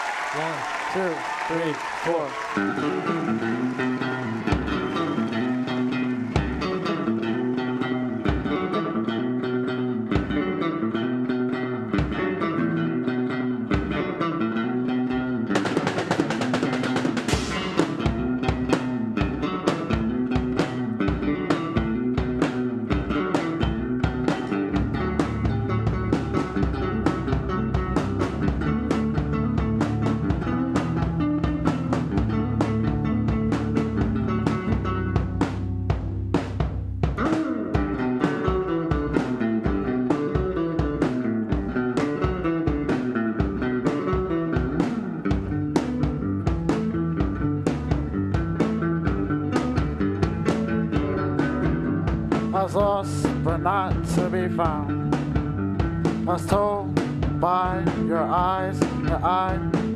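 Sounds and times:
drum kit beat: 0:00.0 - 0:12.5, 0:13.1 - 0:59.9
bass guitar: 0:00.0 - 0:59.9
electric guitar riff: 0:00.6 - 0:59.9.

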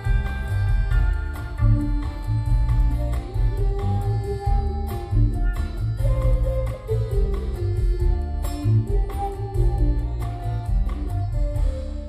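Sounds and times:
acoustic guitar: 0:00.0 - 0:12.0
bass guitar: 0:00.0 - 0:12.0
drums: 0:00.0 - 0:12.0.

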